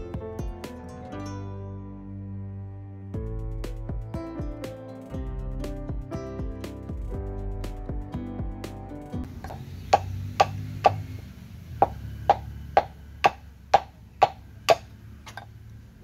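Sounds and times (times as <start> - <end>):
music: 0.0 - 11.0
wooden pestle pounding in mortar: 9.4 - 11.0, 11.8 - 14.9.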